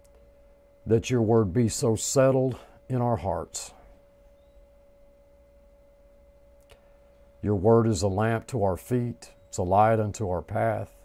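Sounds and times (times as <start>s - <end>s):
thin steady hum: 0.0s - 11.0s.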